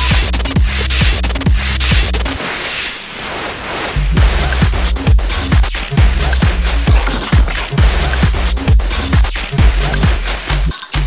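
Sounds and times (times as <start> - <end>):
kick drum and bass: 4.2 - 10.8
glitch electronic music: 6.9 - 8.6.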